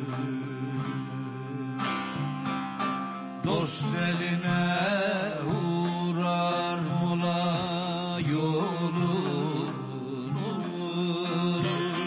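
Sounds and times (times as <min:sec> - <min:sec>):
folk music with drone notes: 0:00.0 - 0:12.0.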